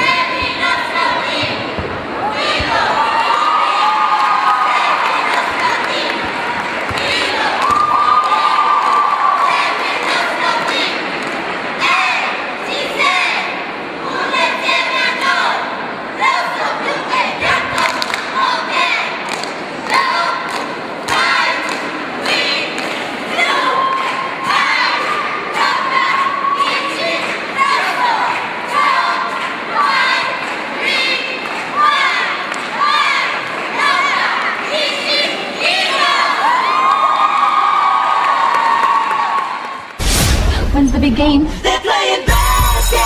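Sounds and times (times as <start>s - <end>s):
crowd cheering and shouting: 0.0s - 11.1s, 23.3s - 40.3s, 41.6s - 43.0s.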